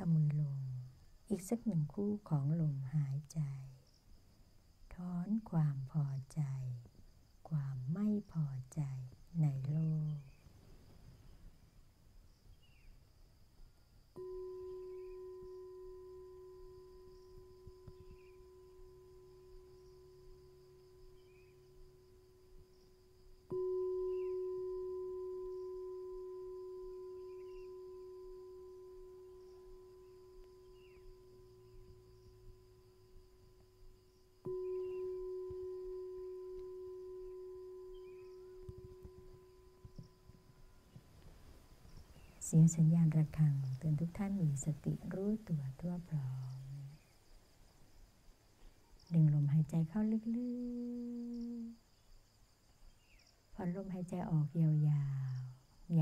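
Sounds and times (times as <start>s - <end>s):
meditation bell ringing: 14.2s - 41.1s.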